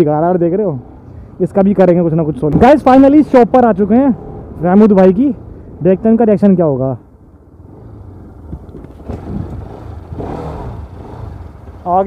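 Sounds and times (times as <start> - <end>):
motorcycle engine running: 7.6 - 12.0.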